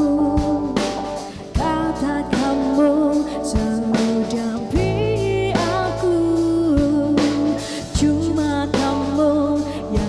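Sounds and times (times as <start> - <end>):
band with drums: 0.0 - 10.0
woman singing pop song: 0.0 - 10.0.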